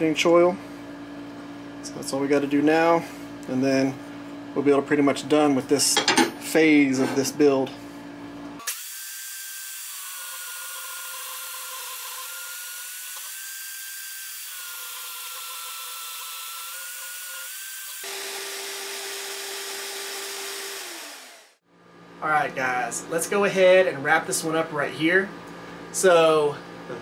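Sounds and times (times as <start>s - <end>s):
bandsaw cutting steel: 8.6s - 21.6s.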